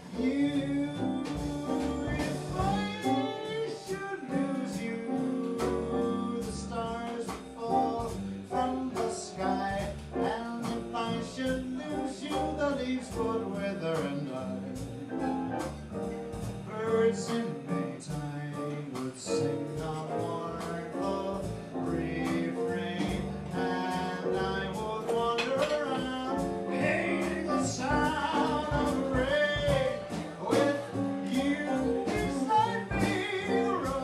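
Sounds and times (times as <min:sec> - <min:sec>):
piano: 0:00.0 - 0:34.0
plucked double bass: 0:00.0 - 0:34.0
saxophone melody: 0:00.8 - 0:04.5.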